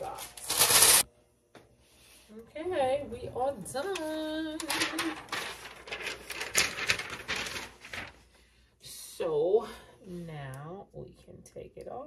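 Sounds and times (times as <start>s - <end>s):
rustling: 4.0s - 8.2s.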